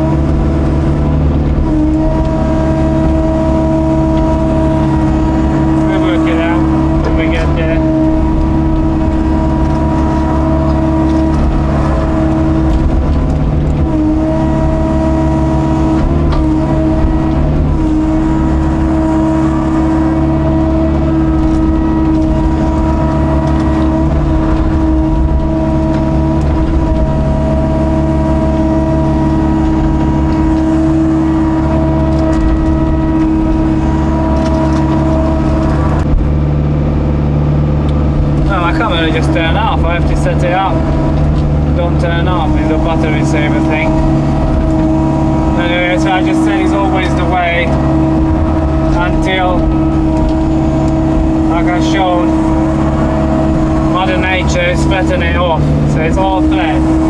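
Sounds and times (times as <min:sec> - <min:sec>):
excavator diesel engine running: 0:00.0 - 0:57.0
hydraulics working: 0:00.0 - 0:57.0.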